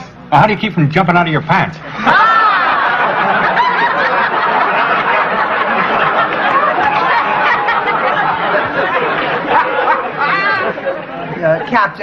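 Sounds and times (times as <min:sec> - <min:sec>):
chatter of overlapping voices: 0:05.5 - 0:12.0.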